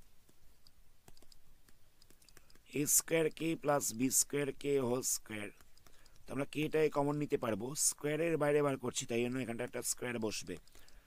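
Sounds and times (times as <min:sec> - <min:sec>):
stylus tapping on pen tablet: 0:00.2 - 0:03.5, 0:05.3 - 0:07.4, 0:10.3 - 0:11.0.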